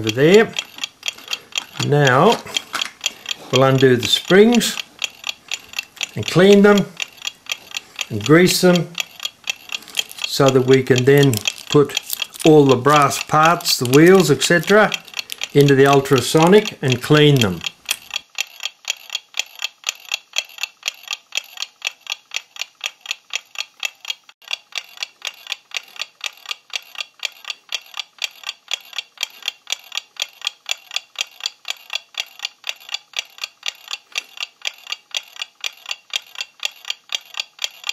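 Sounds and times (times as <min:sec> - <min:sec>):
clock ticking: 0:00.0 - 0:37.9.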